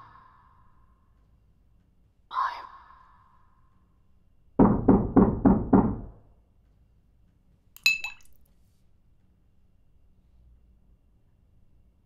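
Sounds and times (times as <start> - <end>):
heavy knocking on a door: 4.6 - 6.4
bright ringing clink: 7.8 - 8.4.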